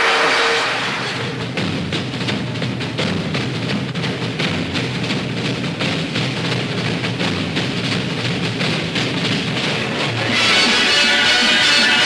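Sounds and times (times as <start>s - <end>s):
orchestral dance music with drums: 0.0s - 12.0s.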